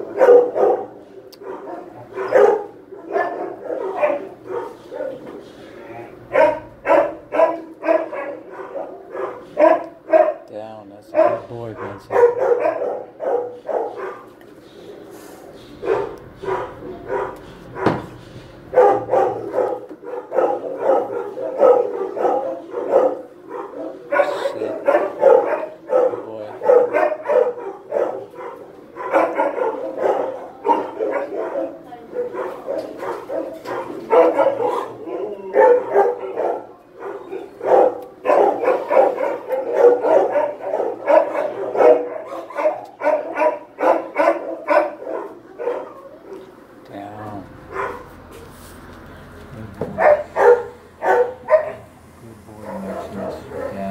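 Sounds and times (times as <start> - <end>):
many dogs barking: 0.0 - 48.5, 49.8 - 53.9.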